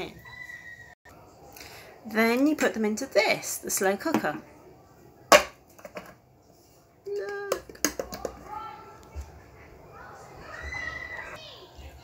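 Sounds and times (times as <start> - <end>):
children's voices: 9.8 - 12.0.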